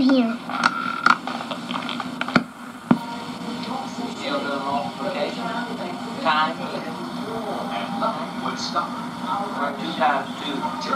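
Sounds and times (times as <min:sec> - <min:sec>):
faint voices: 0:00.0 - 0:10.9
low speaker hum: 0:00.0 - 0:10.9.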